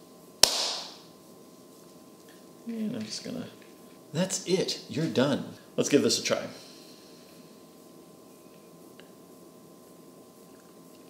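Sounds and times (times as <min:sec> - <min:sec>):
hands slapping together: 0:00.4 - 0:01.0.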